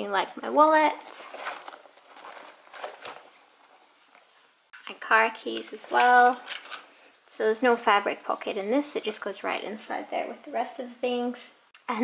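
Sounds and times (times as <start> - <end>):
leather bag rustling: 1.0 - 4.3.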